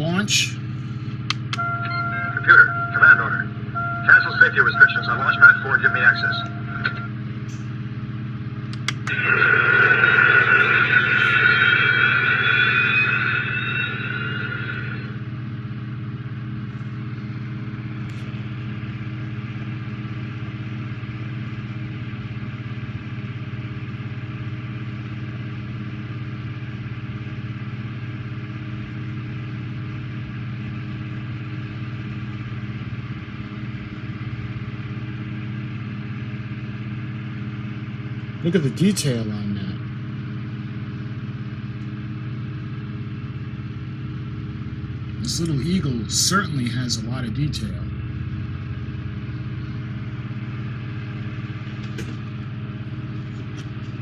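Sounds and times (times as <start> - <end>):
high tone and rising whine: 0.0 - 54.0
low electronic hum: 0.0 - 54.0.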